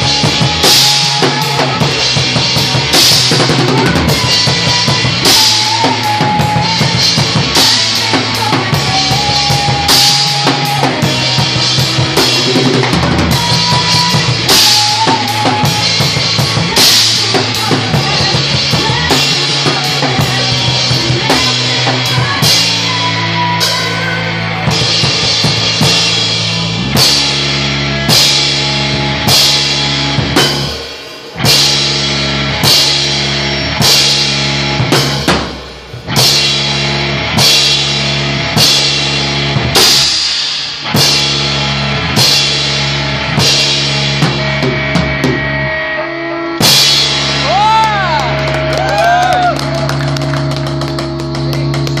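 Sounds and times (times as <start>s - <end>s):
drum kit: 0.0s - 52.0s
electric guitar and bass chords: 0.0s - 52.0s.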